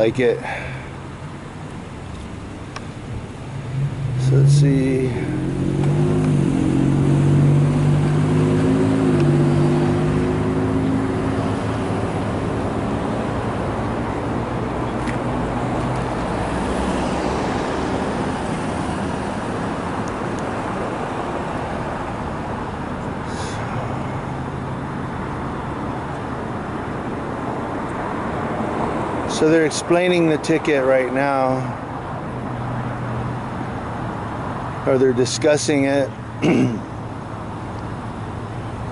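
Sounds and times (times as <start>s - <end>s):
passing traffic rush: 0.0s - 38.9s.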